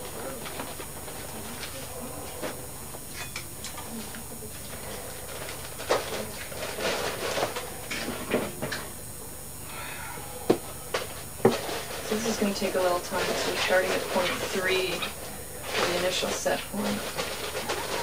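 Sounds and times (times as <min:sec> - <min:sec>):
low room hum: 0:00.0 - 0:18.0.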